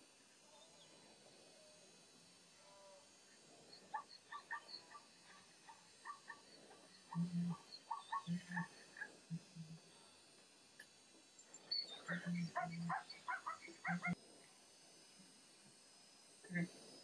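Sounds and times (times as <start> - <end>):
low-pitched animal calls: 3.7 - 9.8, 11.7 - 14.2
short high animal calls: 7.0 - 9.8.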